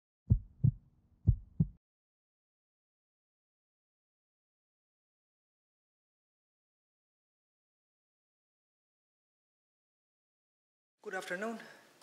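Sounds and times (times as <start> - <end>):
heartbeat: 0.3 - 1.8.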